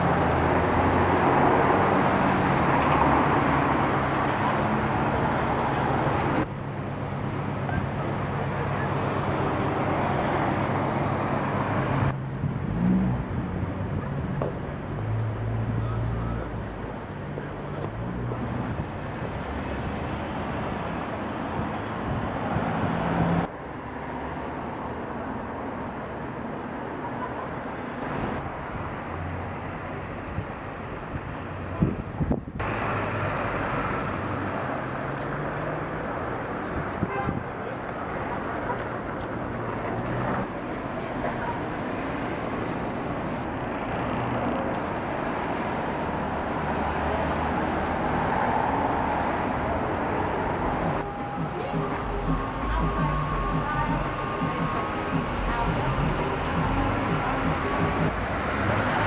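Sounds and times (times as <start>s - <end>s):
cars and trucks passing: 0.0s - 59.0s.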